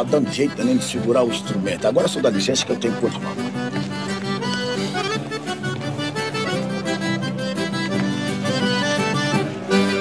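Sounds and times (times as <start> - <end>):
accordion playing: 0.0 - 10.0.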